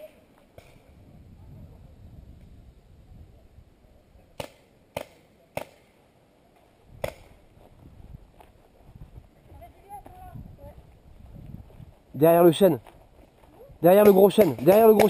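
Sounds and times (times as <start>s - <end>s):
paintball marker pops: 7.0s - 7.3s.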